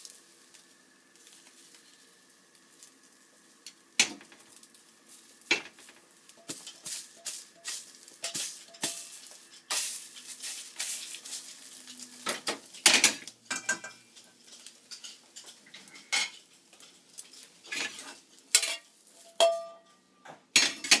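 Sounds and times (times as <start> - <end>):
pan clattering on burner grate: 3.6 - 4.7, 5.4 - 11.6, 12.2 - 21.0
chopsticks scraping a frying pan: 5.1 - 19.9.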